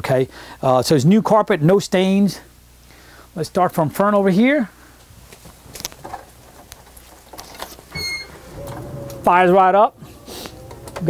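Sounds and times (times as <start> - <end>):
small clicks and rustles: 5.3 - 9.2
engine starting and idling: 8.2 - 11.0.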